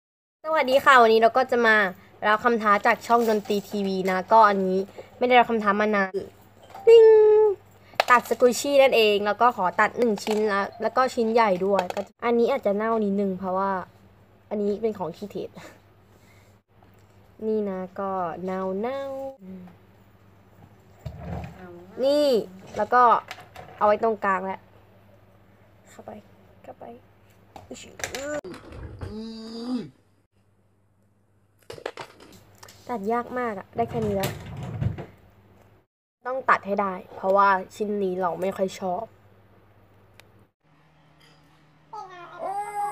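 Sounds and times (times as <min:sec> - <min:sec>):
girl talking: 0:17.4 - 0:19.7, 0:21.6 - 0:23.1, 0:41.9 - 0:42.9
girl straining vocally: 0:29.1 - 0:30.0, 0:42.0 - 0:42.9
girl talking and squealing: 0:42.0 - 0:42.9.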